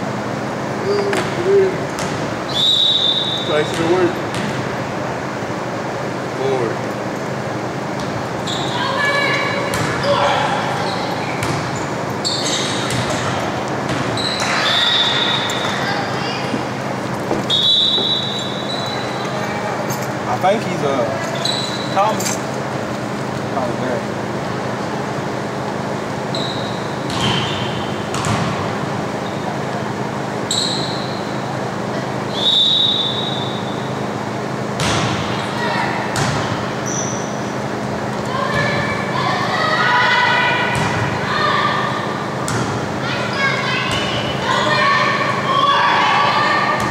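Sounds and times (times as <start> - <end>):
crowd voices echoing: 0.0 - 46.9
short high squeaks: 10.8 - 12.8, 14.2 - 15.9, 21.3 - 22.4, 26.3 - 27.8, 30.5 - 31.2
referee's whistle blast: 17.5 - 19.0, 32.3 - 33.9
volleyball being struck: 28.1 - 28.7, 34.8 - 35.3.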